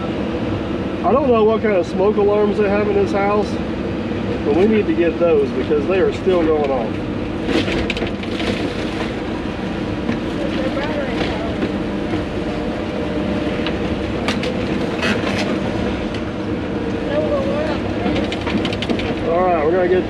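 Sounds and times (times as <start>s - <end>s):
excavator engine running: 0.0s - 20.0s.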